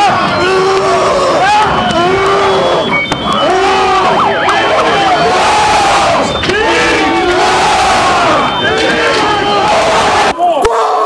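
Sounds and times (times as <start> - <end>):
crowd yelling and shouting: 0.0 - 11.0.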